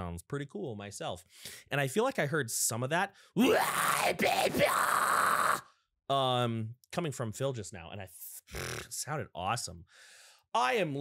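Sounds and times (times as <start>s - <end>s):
man screaming harshly: 3.4s - 5.7s.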